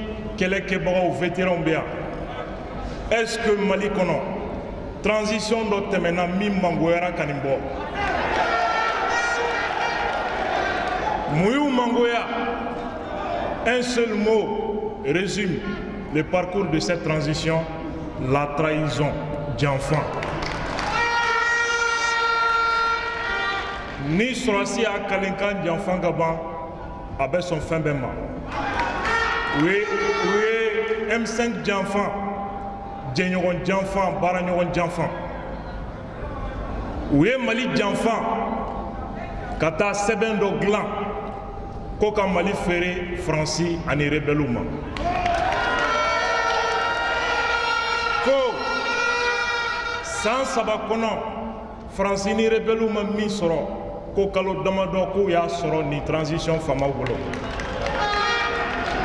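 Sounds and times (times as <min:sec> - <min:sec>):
crowd noise: 0:01.8 - 0:05.0, 0:07.0 - 0:25.9, 0:28.0 - 0:31.4, 0:34.9 - 0:37.4, 0:44.4 - 0:51.6, 0:56.8 - 0:59.0
steady held tone: 0:21.0 - 0:44.9.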